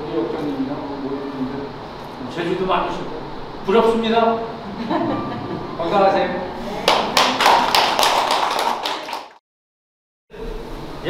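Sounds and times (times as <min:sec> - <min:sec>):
people clapping: 0:06.8 - 0:09.4.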